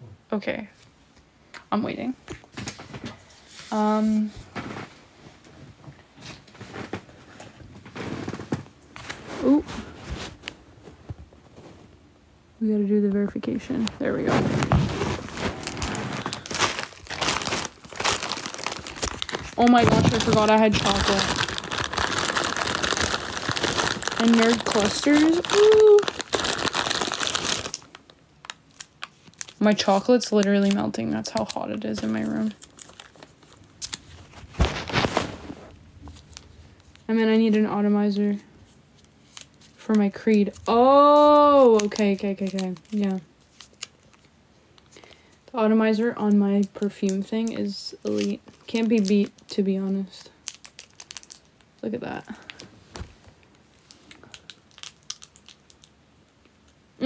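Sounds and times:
wrapper crinkling: 13.6 - 56.8.

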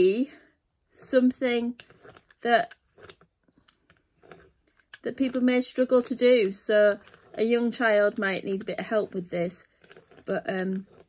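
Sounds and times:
rolling pin rolling over clay: 1.0 - 11.0.

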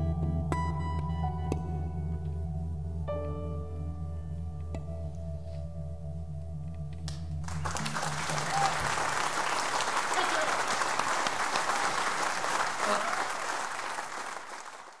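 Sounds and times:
audience applauding: 7.4 - 15.0.

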